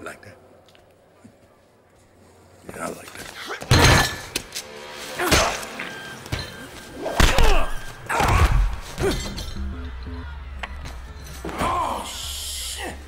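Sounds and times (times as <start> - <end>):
background score music: 4.0 - 13.0.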